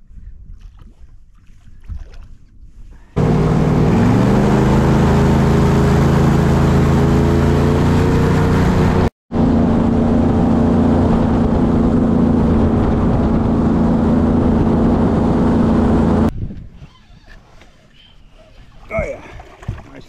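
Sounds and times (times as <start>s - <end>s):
airboat engine and propeller drone: 3.1s - 16.3s, 16.9s - 20.0s.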